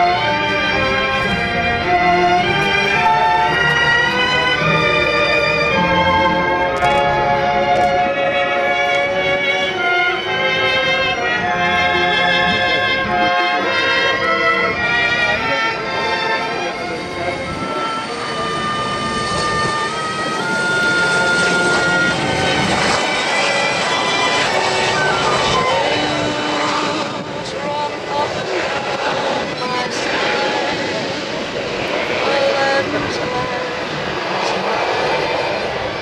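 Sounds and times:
tone gliding down in pitch: 0.0s - 34.0s
aircraft engines passing: 0.0s - 36.0s
indistinct loudspeaker speech: 26.6s - 30.6s, 32.1s - 33.8s.

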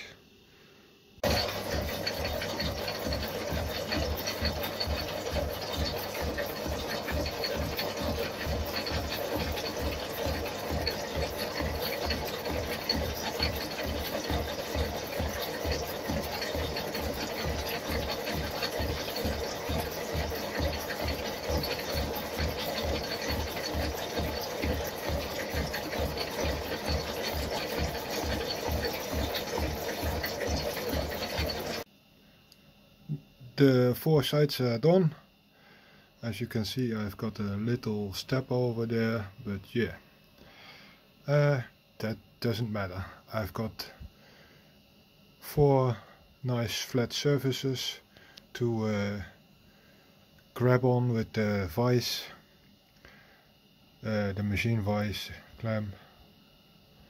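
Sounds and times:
metal shaper clattering: 1.2s - 31.8s.

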